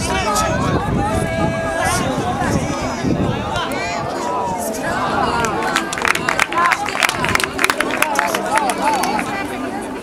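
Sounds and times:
players and spectators shouting: 0:00.0 - 0:09.4.

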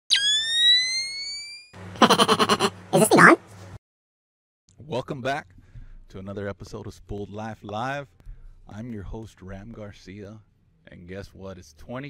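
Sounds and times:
gliding electronic tone: 0:00.1 - 0:01.7.

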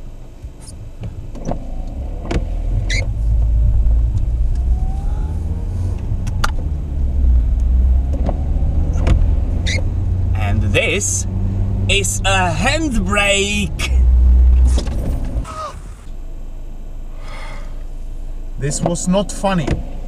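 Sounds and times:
car engine and road rumble: 0:00.0 - 0:20.0.

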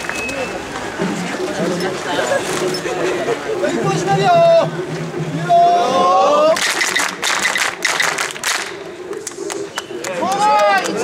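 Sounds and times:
crowd clapping: 0:06.6 - 0:11.0.

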